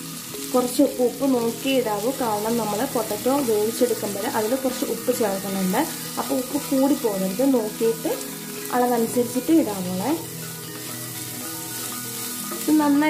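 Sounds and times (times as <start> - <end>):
vegetables sizzling in frying pan: 0.0 - 13.0
spatula stirring in pan: 5.8 - 13.0.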